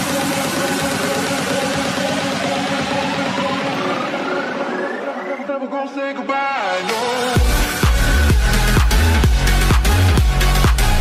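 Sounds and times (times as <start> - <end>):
rising synth sweep: 0.0 - 5.6
fast pulsing beat: 7.3 - 11.0.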